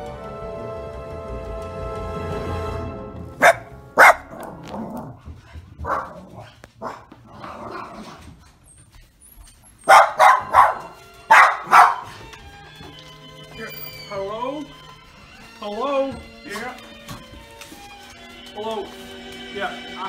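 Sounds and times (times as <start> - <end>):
small dog barking: 3.4 - 5.0, 5.8 - 8.0, 9.8 - 12.2.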